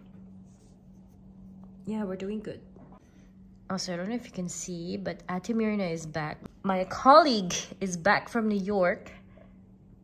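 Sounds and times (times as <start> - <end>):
steady low hum: 0.0 - 10.0
woman speaking: 1.8 - 2.8, 3.7 - 9.2.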